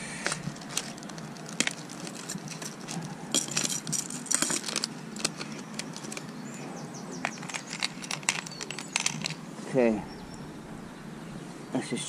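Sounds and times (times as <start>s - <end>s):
metal lures clinking: 0.2s - 6.4s, 7.2s - 9.4s.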